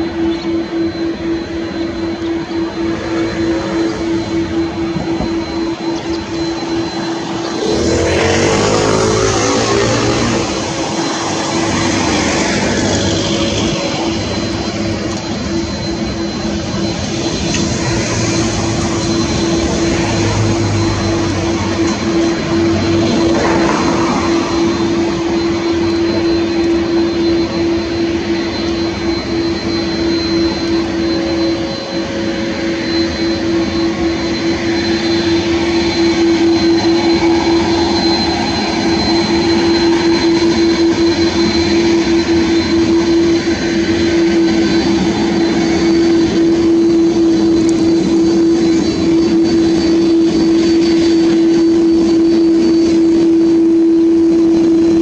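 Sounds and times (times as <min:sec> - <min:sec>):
jet engines whining: 0:00.0 - 0:55.0.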